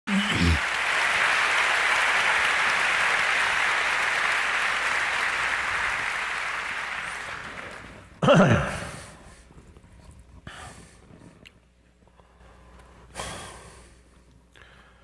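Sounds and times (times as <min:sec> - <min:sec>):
audience applauding: 0:00.1 - 0:08.9.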